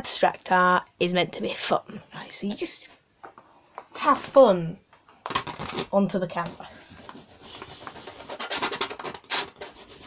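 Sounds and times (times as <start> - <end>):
paint rubbing on canvas: 7.0 - 10.0.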